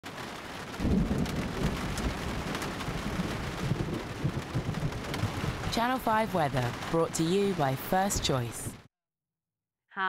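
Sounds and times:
steady rain hissing: 0.1 - 8.8
low rumble of thunder: 0.7 - 7.0.

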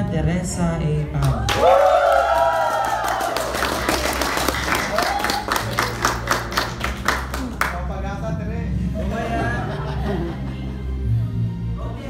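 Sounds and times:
audience clapping: 1.2 - 8.0
audience cheering: 1.4 - 5.9.

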